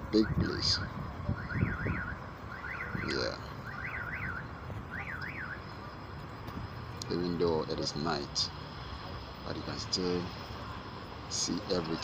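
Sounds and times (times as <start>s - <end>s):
outdoor traffic hum: 0.0s - 12.0s.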